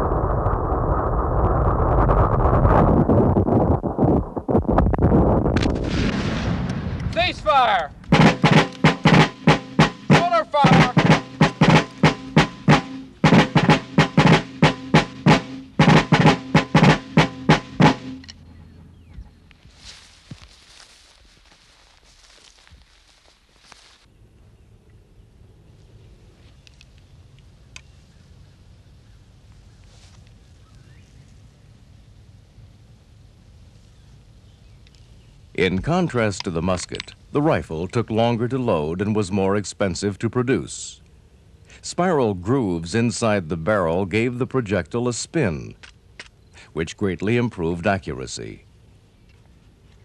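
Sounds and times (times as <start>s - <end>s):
snare drum beating rapidly: 8.1s - 18.2s.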